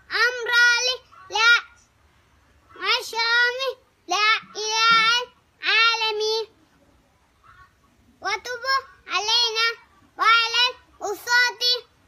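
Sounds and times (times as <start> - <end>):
boy chanting: 0.0 - 1.8, 2.7 - 6.6, 7.4 - 11.9.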